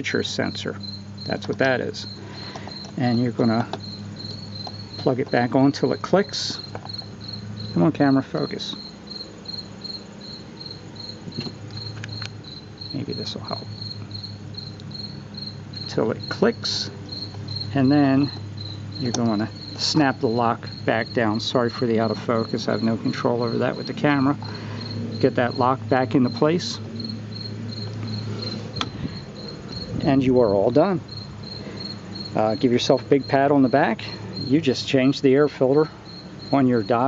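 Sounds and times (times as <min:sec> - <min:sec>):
cricket chirping: 0:00.0 - 0:37.0
low steady hum: 0:00.0 - 0:37.0.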